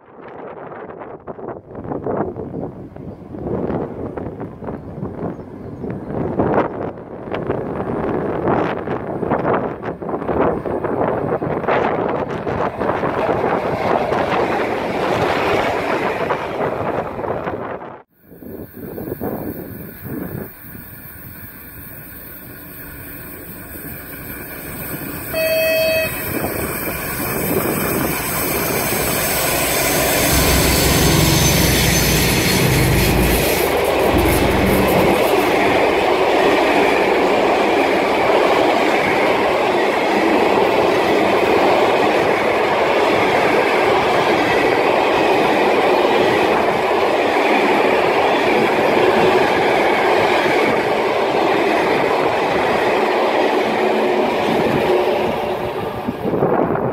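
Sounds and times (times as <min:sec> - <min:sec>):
locomotive horn blast: 0:25.2 - 0:26.7
locomotive engine running loud: 0:25.8 - 0:38.0
train wheels clattering on rails: 0:26.3 - 0:56.4.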